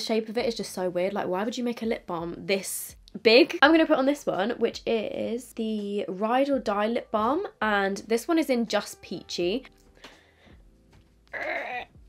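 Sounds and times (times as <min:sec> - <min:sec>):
faint breath: 0:09.9 - 0:10.8.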